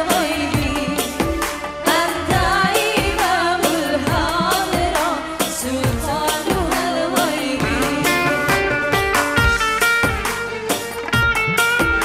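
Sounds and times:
women singing: 0.0 - 8.7
band with drums and electric guitar: 0.0 - 12.0.

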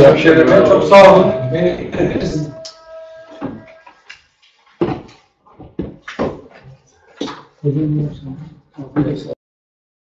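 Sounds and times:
knocks and thumps: 4.8 - 7.5.

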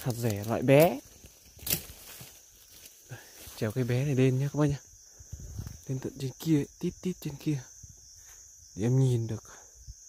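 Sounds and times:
high-pitched insect drone: 0.0 - 10.0
rustle of leaves and twigs: 0.0 - 10.0.

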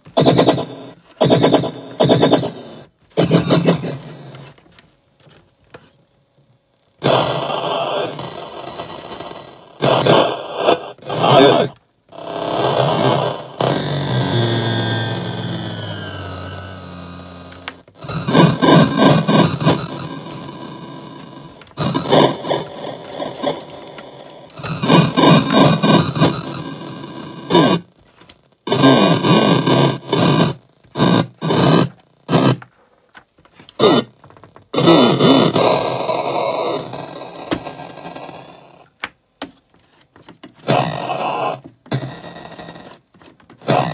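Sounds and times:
toy beat machine beats: 0.0 - 4.4, 7.0 - 27.9, 28.7 - 32.7, 33.8 - 38.9, 40.6 - 43.0, 43.6 - 43.9.

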